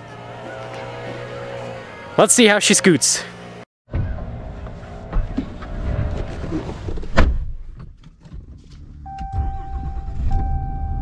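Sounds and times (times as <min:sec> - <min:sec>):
car door shutting: 0:06.4 - 0:11.0
electronic warning tone: 0:09.1 - 0:11.0.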